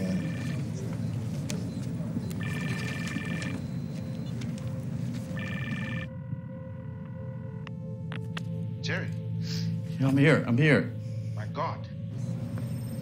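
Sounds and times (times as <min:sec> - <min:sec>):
telephone ringing: 0:00.0 - 0:07.7.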